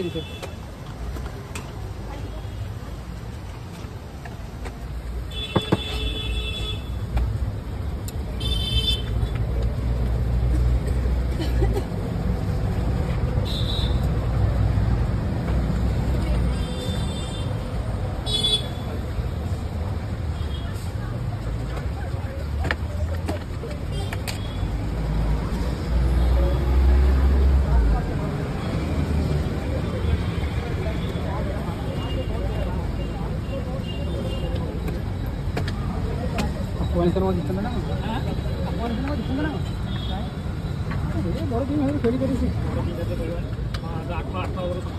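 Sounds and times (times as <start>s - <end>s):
vehicle engines rumbling: 0.0s - 44.9s.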